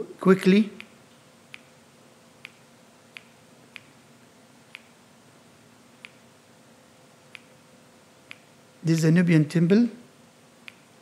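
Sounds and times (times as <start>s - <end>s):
low steady hum: 0.0s - 11.0s
faint sharp clicks: 10.6s - 10.8s.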